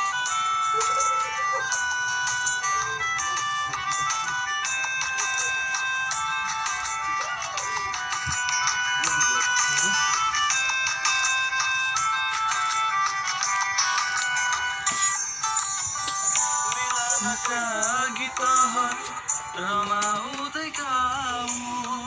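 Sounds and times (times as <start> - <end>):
high electronic notes: 0.0 - 19.6.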